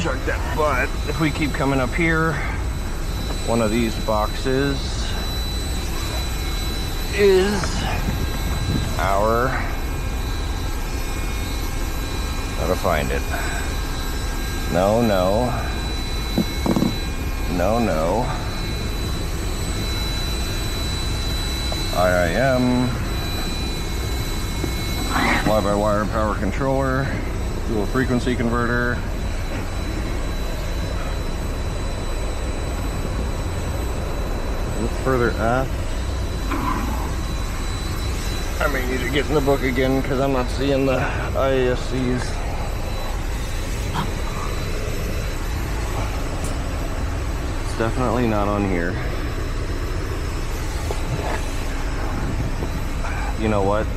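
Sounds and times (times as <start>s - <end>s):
aircraft systems drone and airflow: 0.0s - 53.9s
cooling fans with low rumble: 0.0s - 53.9s
thin steady high whine: 0.0s - 53.9s.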